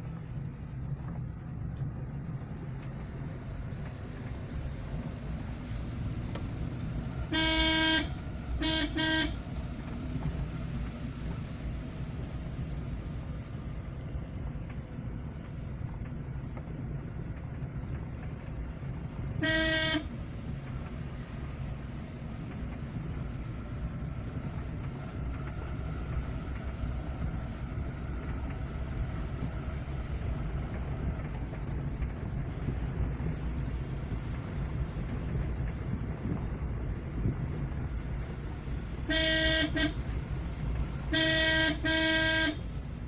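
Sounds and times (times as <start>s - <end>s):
engine and tyre rumble: 0.0s - 43.0s
car horn toot: 7.3s - 9.4s, 19.4s - 20.1s, 39.1s - 40.0s, 41.1s - 42.7s.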